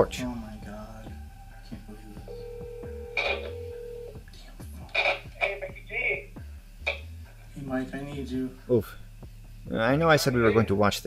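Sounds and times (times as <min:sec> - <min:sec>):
low pulsing background: 0:00.0 - 0:11.0
telephone ringback tone: 0:02.2 - 0:04.2.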